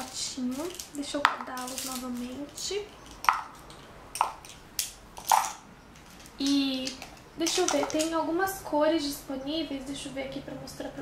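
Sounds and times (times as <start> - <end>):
makeup brushes clacking in pot: 0.0 - 8.2.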